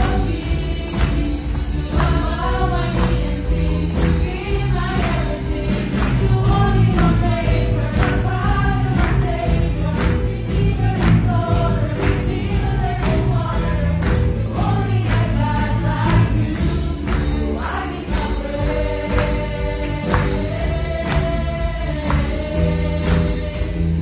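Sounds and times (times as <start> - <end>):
tambourines shaken and struck: 0.0 - 24.0
women singing together: 0.0 - 24.0
worship band playing: 0.0 - 24.0.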